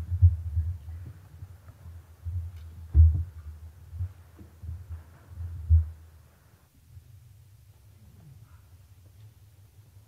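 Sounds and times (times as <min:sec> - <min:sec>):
dull low thumps on microphone: 0:00.0 - 0:06.2.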